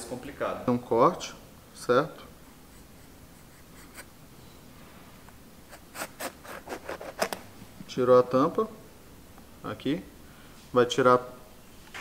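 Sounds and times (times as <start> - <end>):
knife cutting fruit rind: 5.8 - 7.4.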